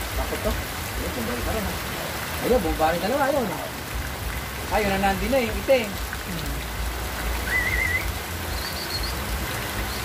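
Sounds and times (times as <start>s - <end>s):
rain on roofs and leaves: 0.0s - 10.0s
water running off eaves: 0.0s - 10.0s
warbling whistle: 7.4s - 9.2s.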